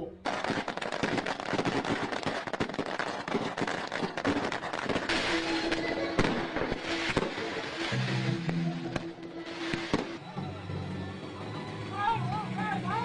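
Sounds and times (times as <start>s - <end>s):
firecrackers popping: 0.1s - 10.3s.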